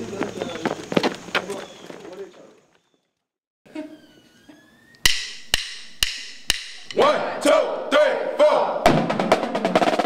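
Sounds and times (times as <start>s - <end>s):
drumsticks clicking together: 5.0s - 7.0s
marching drums playing: 5.1s - 7.5s, 8.8s - 10.0s.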